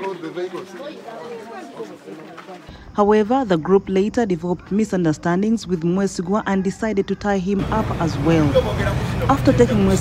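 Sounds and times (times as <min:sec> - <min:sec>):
background chatter: 0:00.0 - 0:10.0
narration: 0:02.6 - 0:10.0.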